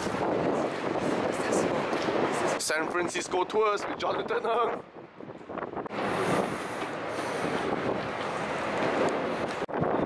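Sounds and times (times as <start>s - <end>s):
steady rushing noise: 0.0s - 10.0s.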